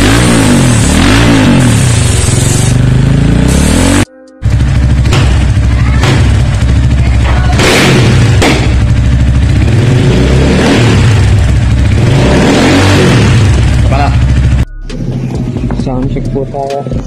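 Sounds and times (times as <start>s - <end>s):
motorcycle engine revving: 0.0s - 17.0s.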